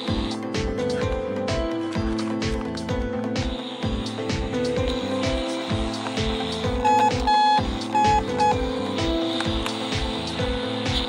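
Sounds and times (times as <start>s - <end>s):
background music with a beat: 0.0s - 11.0s
toy walkie-talkie beeps: 6.8s - 8.6s.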